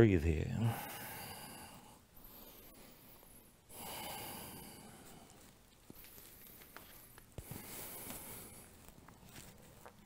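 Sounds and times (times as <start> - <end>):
person breathing out: 0.6 - 5.4.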